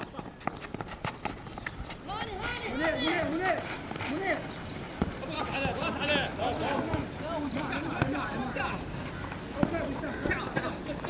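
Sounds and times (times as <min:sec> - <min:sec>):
running footsteps: 0:00.0 - 0:11.0
players shouting: 0:02.0 - 0:11.0.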